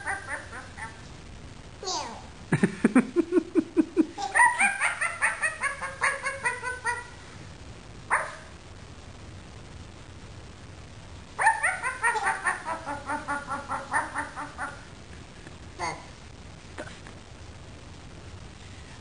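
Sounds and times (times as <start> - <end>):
toy dog yipping bark: 11.4 - 12.8.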